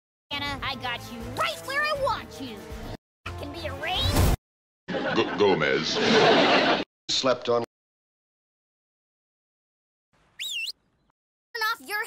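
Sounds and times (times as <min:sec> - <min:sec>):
whistle-like cartoon sound effect: 0:10.4 - 0:10.8.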